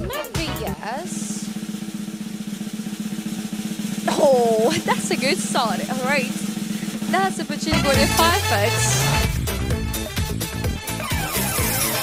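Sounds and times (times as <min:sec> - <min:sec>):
snare drum roll: 0:00.1 - 0:09.6.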